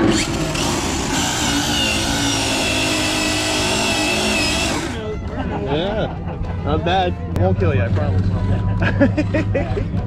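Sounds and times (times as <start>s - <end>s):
electric motor whining: 0.0s - 5.1s.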